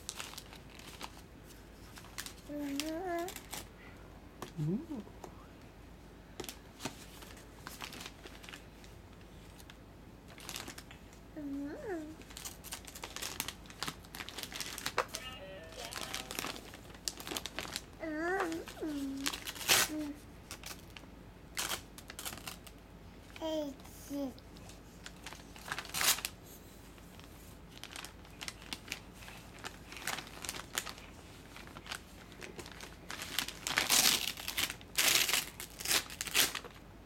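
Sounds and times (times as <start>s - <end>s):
wrapping paper crinkling: 0.0s - 3.7s, 6.4s - 11.0s, 11.6s - 23.4s, 24.6s - 26.4s, 27.0s - 36.8s.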